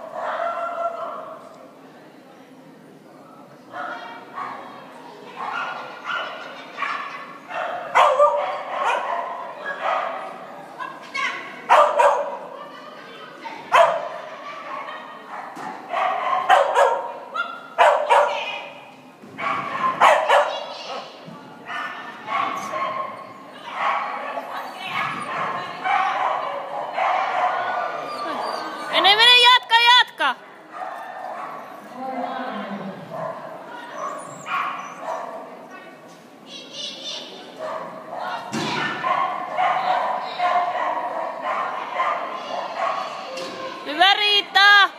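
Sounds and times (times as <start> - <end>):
small dog barking: 5.4 - 10.2, 11.7 - 12.4, 13.7 - 14.2, 15.3 - 18.6, 19.4 - 21.1, 39.0 - 43.2.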